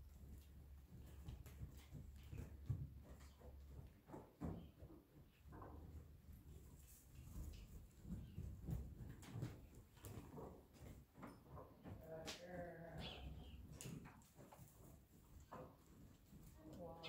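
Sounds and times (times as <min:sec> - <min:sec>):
horse hooves thudding on dirt: 0:00.0 - 0:17.0.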